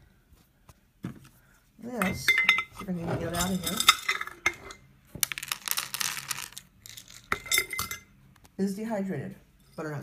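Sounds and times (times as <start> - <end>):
dry food pieces clattering onto plate: 5.2 - 8.0.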